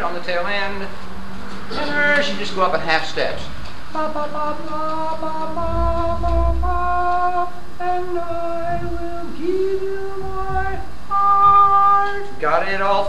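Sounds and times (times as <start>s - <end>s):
singers in unison a cappella: 3.9s - 12.4s.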